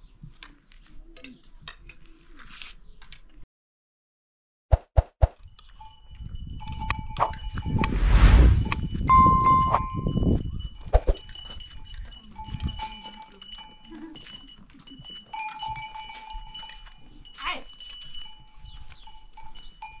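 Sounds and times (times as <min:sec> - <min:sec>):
goat bells clinking: 0:05.4 - 0:07.8, 0:09.1 - 0:20.0.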